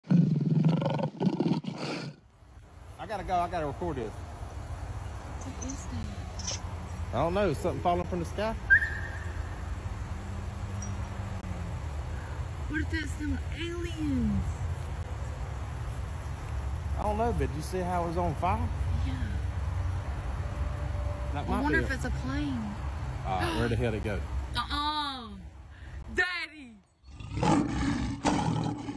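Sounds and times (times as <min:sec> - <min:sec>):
lion roaring: 0:00.0 - 0:02.2, 0:27.1 - 0:28.9.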